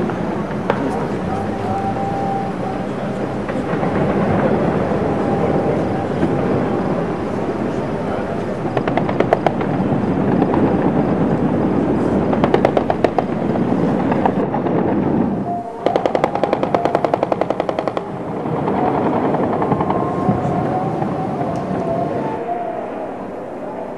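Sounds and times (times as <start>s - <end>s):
steady background noise: 0.0s - 23.9s.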